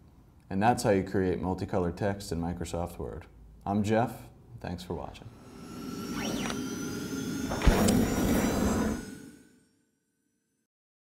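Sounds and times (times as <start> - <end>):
whoosh with sweeping tones: 5.2 - 9.7
bright shimmer: 5.3 - 9.8.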